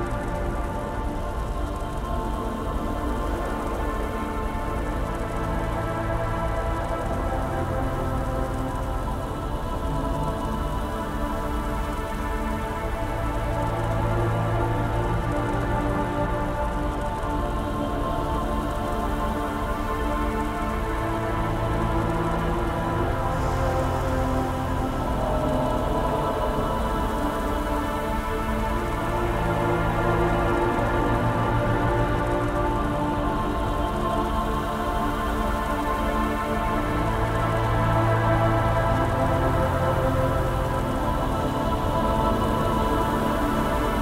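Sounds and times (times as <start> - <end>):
continuous hissing noise: 0.0 - 44.0
dark ambient synth drones: 0.0 - 44.0.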